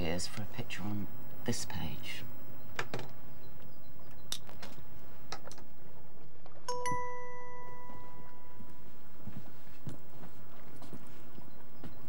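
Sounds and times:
bright bell-like chime: 6.7 - 8.7.

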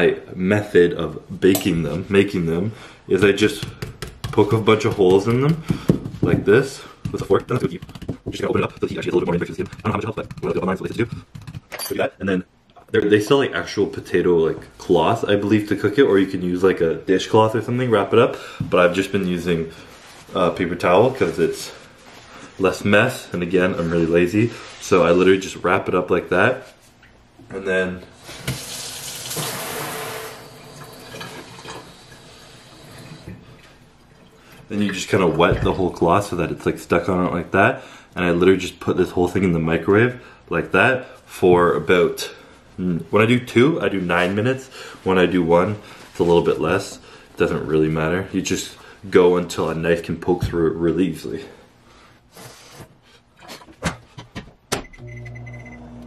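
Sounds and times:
tap water running into sink: 28.4 - 32.2.

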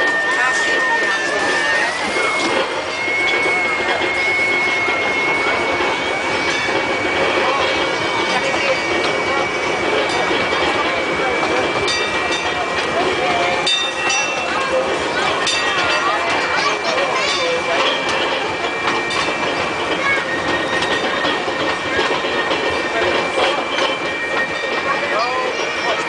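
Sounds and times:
passengers chattering: 0.0 - 26.0
ride train whine: 0.0 - 26.0.

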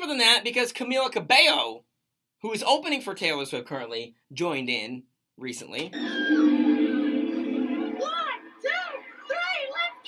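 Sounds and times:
live concert music with held note: 6.0 - 8.7.

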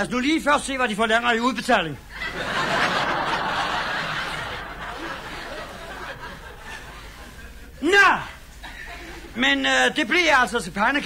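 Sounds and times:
studio audience laughing: 2.1 - 7.8, 8.5 - 9.4.

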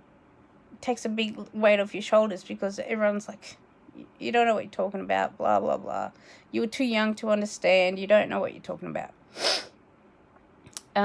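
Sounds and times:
woman's sharp breath: 9.3 - 9.8.

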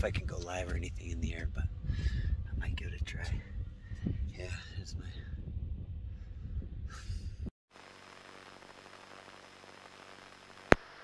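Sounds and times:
wind buffeting microphone: 0.0 - 7.5.

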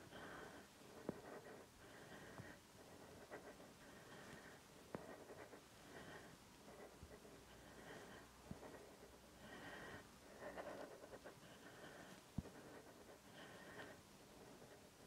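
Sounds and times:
woman breathing faintly: 0.0 - 15.0.

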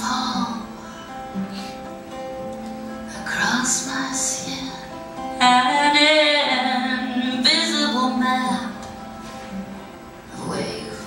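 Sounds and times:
woman singing: 0.0 - 0.8, 3.1 - 8.9, 10.3 - 11.0
acoustic guitar: 0.0 - 11.0.

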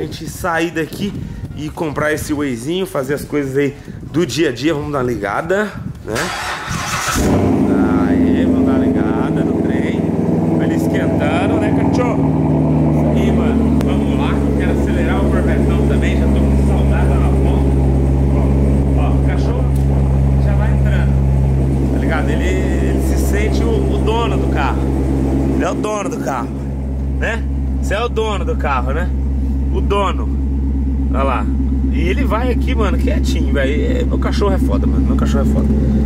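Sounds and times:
car engine idling: 6.2 - 36.0.

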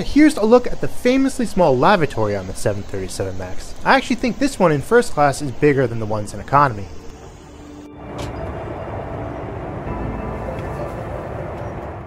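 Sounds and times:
airliner cabin airflow and engine noise: 0.0 - 12.0.

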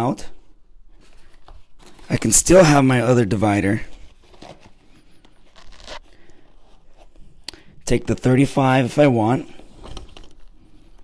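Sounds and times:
fabric rustling: 3.7 - 7.5
light scraping inside bag: 5.4 - 7.0.

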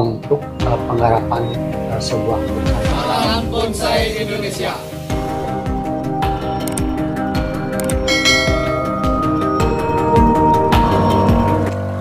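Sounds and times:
intro music with low thumps: 0.3 - 12.0
bright bell-like chime: 7.9 - 11.6.

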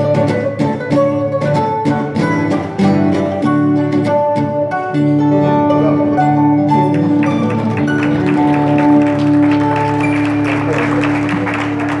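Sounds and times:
applause: 6.9 - 12.0.

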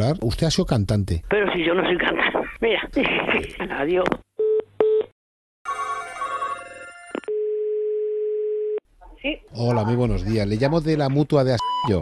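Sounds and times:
telephone ringback tone: 5.7 - 8.8.

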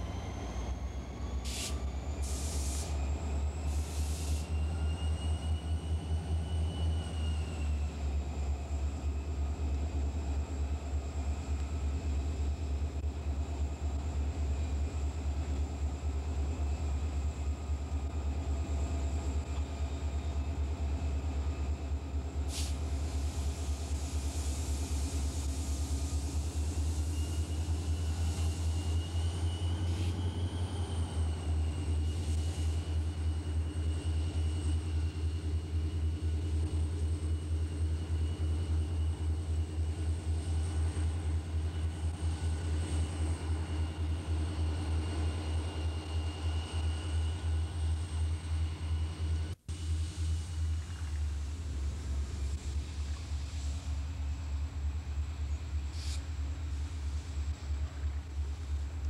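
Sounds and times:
diesel locomotives rumbling: 0.0 - 59.0
faint high whine: 25.0 - 59.0.

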